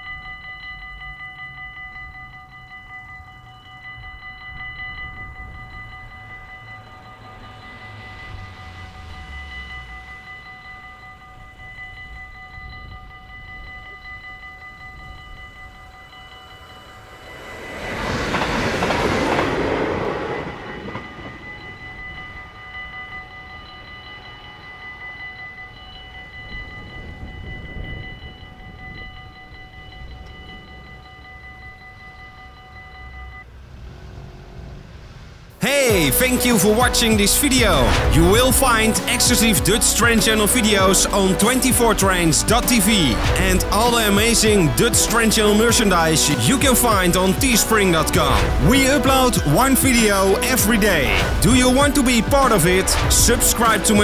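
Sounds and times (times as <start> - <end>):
level crossing bells ringing: 0.0 - 33.6, 35.6 - 54.0
train passing quickly: 3.2 - 54.0.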